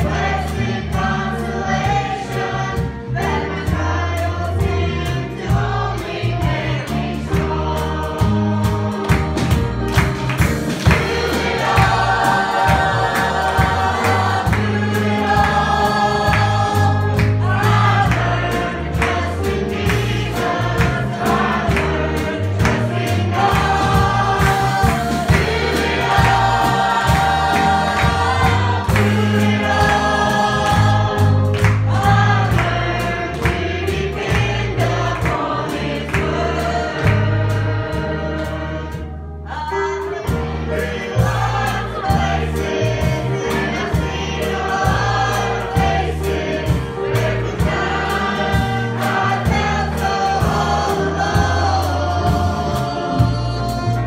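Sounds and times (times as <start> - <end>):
drum kit: 0.0 - 54.0
electric bass: 0.0 - 54.0
gospel singing: 0.0 - 54.0
piano: 0.0 - 54.0.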